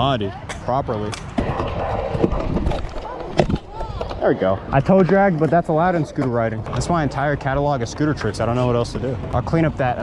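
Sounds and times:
scooter wheels rolling on concrete: 0.0 - 10.0.

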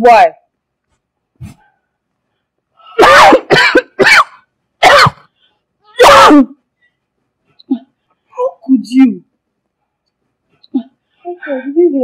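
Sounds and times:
woman coughing: 3.0 - 5.2.

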